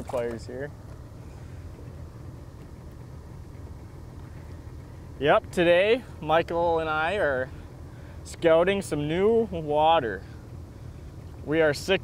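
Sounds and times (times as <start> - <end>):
boat motor idling: 0.0 - 12.0.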